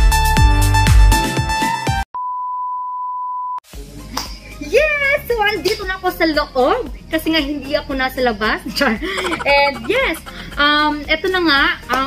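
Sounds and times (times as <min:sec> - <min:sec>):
music: 0:00.0 - 0:02.0, 0:03.7 - 0:12.0.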